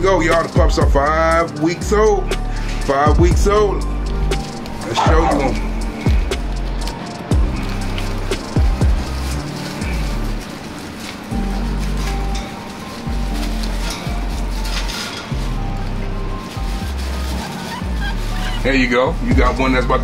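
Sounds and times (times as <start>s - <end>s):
background music with bass: 0.0s - 10.6s, 11.3s - 20.0s
sharp drum hits: 5.0s - 6.3s.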